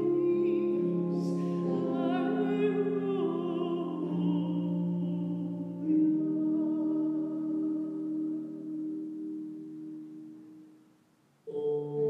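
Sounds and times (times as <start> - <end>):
soprano singing: 0.0 - 10.4, 11.5 - 12.0
reverberant piano chord: 0.0 - 10.9.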